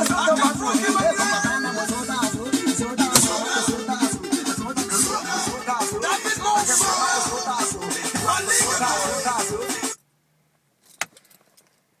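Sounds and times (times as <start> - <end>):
ignition key click: 3.1 - 3.4
car keys jingling: 10.8 - 11.9.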